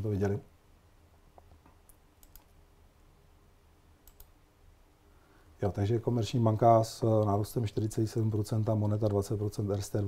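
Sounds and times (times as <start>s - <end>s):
computer keyboard clicks: 1.4s - 2.5s, 4.0s - 4.3s.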